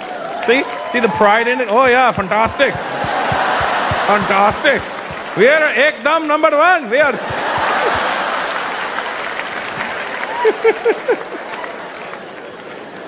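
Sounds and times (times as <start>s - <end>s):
audience applauding and cheering: 0.0s - 6.3s, 7.1s - 13.0s.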